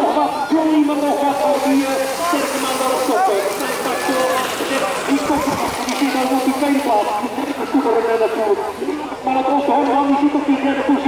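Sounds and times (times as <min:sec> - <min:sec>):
man commentating over loudspeakers: 0:00.0 - 0:11.0.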